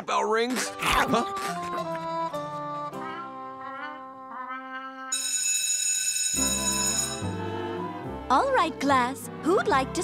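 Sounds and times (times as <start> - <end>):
soft music: 0.1 - 4.4, 6.4 - 10.0
school bell ringing: 5.2 - 7.4.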